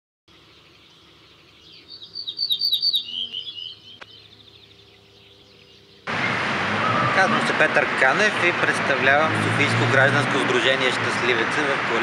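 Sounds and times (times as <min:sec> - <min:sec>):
songbird trilling: 0:00.3 - 0:06.1.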